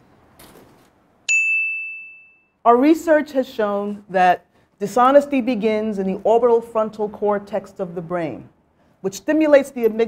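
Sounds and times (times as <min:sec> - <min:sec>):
bell-like ding: 0:01.3 - 0:02.6.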